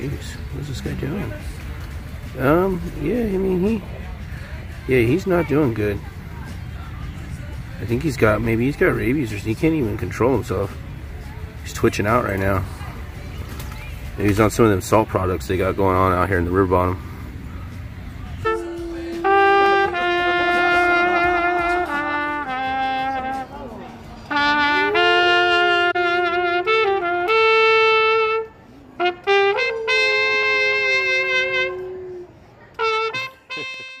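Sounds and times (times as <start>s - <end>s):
trumpet playing long notes: 18.4s - 23.7s, 24.3s - 34.0s.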